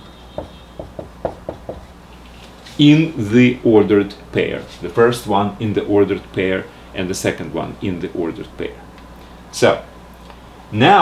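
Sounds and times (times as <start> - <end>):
marker pen tapping on whiteboard: 0.4 - 1.9.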